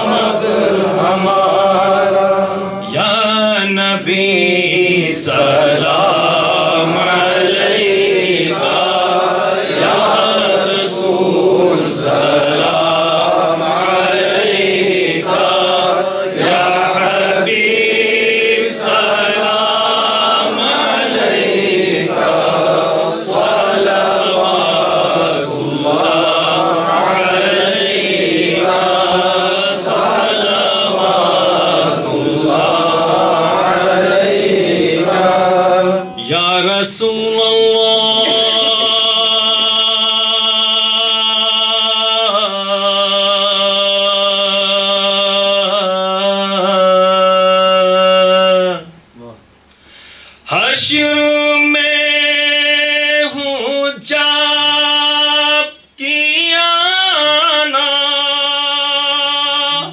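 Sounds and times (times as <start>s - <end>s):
men chanting together: 0.0s - 48.9s.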